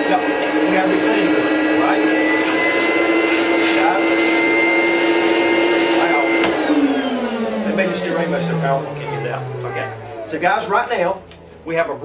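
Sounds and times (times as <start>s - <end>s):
vacuum cleaner motor running: 0.0s - 12.0s.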